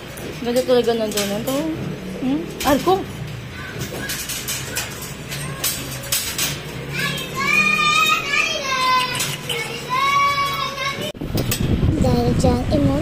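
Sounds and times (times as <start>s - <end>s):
puppies whining: 3.4s - 11.1s
puppies wavering cries: 3.5s - 6.2s, 6.9s - 11.1s.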